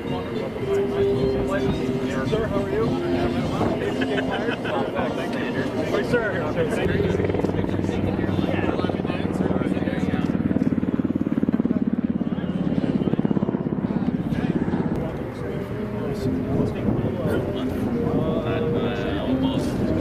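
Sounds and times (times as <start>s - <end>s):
faint voices talking: 0.0s - 20.0s
pulsing engine drone: 0.0s - 20.0s.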